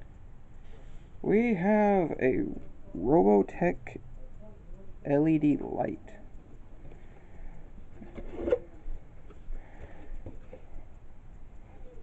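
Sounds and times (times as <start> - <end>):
cardboard scraping and rustling: 8.0 - 8.8.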